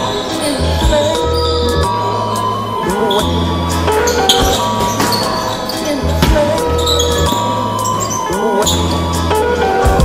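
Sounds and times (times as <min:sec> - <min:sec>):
background music with bass notes: 0:00.0 - 0:10.0.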